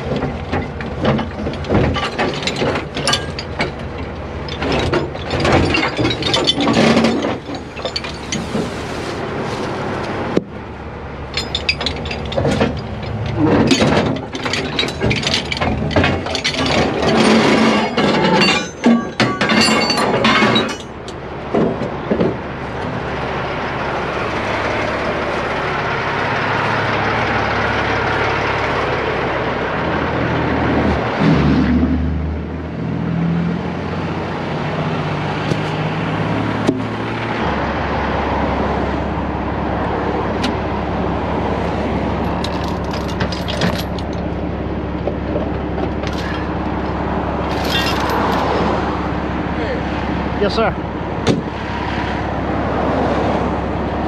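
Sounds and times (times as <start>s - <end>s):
steel chains clanking: 1.2s - 8.9s, 11.2s - 21.2s, 42.0s - 44.3s, 46.0s - 46.6s, 47.4s - 48.9s
diesel truck engine idling: 7.3s - 17.0s, 20.7s - 31.2s, 32.3s - 54.0s
vehicle passing: 46.2s - 54.0s.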